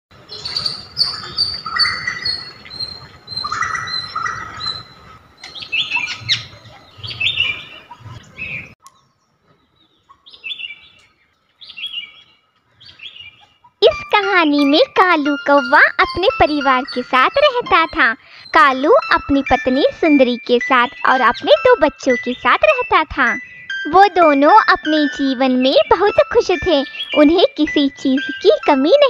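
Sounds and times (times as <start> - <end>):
small birds chirping: 0.2 - 23.8, 24.6 - 28.8.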